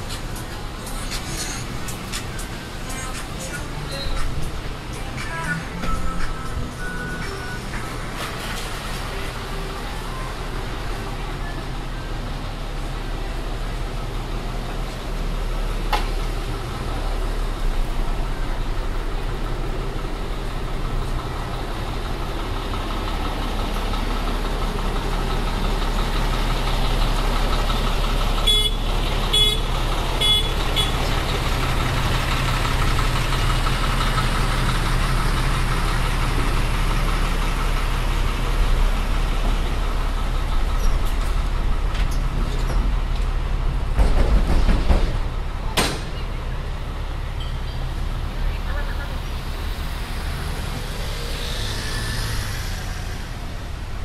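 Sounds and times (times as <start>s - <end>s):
truck engine rumbling: 0.0s - 54.0s.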